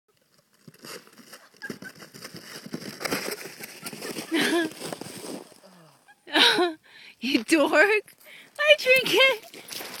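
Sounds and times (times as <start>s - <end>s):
sled scraping down crusty snow: 0.2s - 5.6s.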